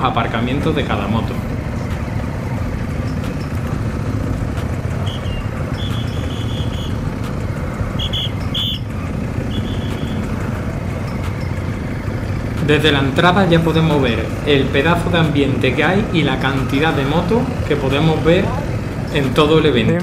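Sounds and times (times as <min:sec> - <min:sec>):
motorcycle engine running: 0:00.0 - 0:20.0
road and wind noise: 0:00.0 - 0:20.0.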